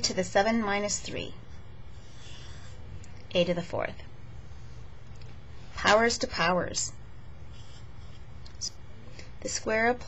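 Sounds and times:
low steady hum: 0.0 - 10.0
marker scratching on paper: 1.2 - 2.9, 7.4 - 8.3.

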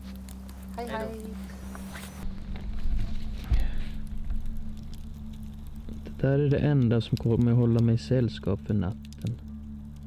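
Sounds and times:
campfire crackling: 0.0 - 10.0.

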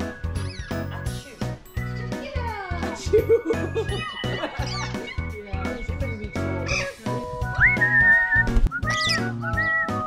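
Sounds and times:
whistled melody: 0.0 - 1.8, 5.9 - 10.0
background music with steady beat: 0.0 - 10.0.

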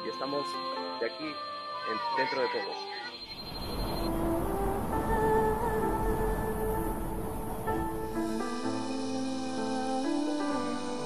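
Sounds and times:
faint music tones: 0.0 - 11.0.

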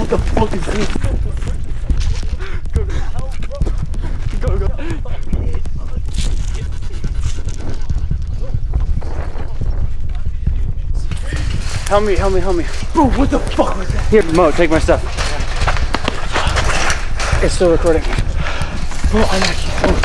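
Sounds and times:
breathless voices: 0.0 - 20.0
footsteps running on rough ground: 0.0 - 20.0
rumble of handling noise: 0.0 - 20.0.

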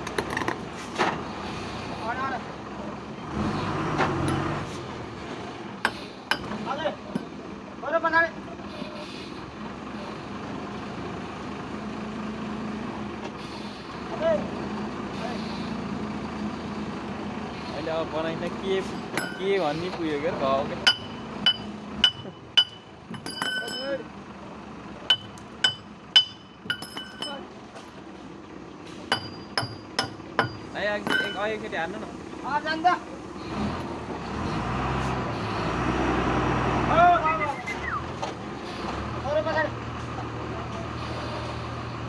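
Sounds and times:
heavy vehicle engine droning: 0.0 - 42.0.

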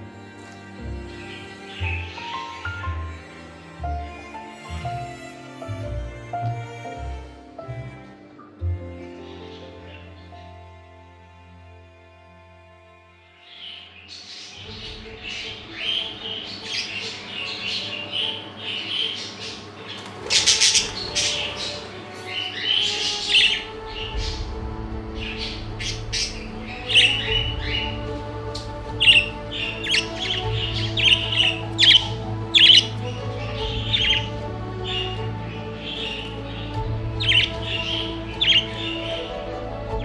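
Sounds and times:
budgerigars chirping and squawking: 0.0 - 3.2, 9.2 - 10.5, 13.4 - 24.6, 25.2 - 39.4
background music: 0.0 - 40.0.

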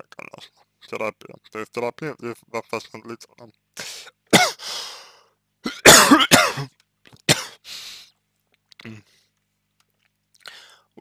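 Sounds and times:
man coughing: 4.3 - 4.7, 5.6 - 7.6.

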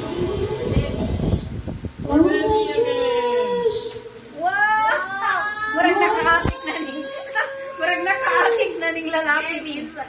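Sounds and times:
children calling and squealing: 0.0 - 9.7.

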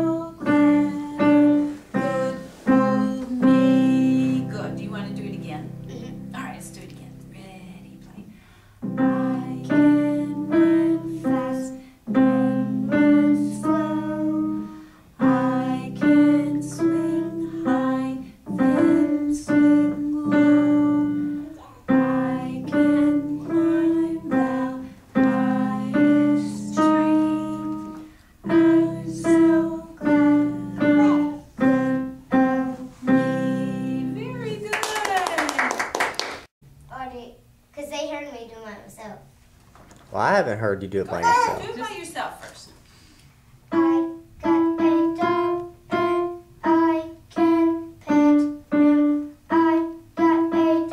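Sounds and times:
digital piano simple tune: 8.8 - 34.6.

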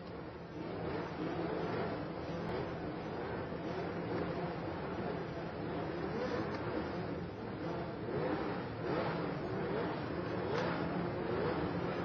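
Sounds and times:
racing car engines revving: 0.0 - 12.0.

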